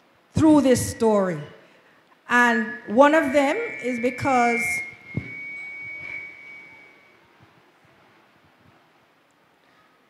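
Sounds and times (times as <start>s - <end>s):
microphone feedback ringing: 2.3s - 7.3s.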